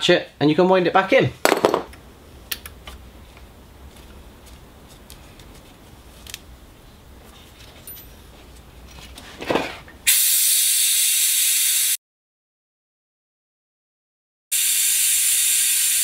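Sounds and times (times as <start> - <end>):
loud air hiss: 10.1 - 11.6.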